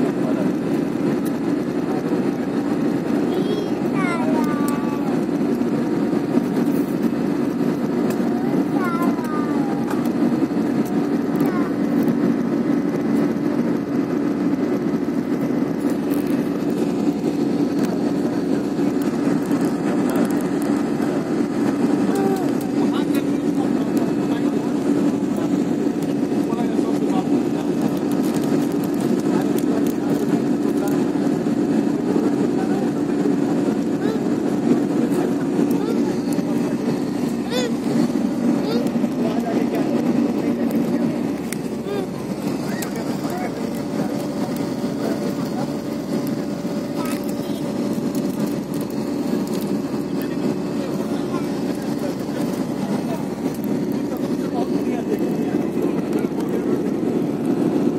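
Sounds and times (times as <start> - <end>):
faint passenger voices: 0.0 - 57.9
jet engine drone: 0.0 - 57.9.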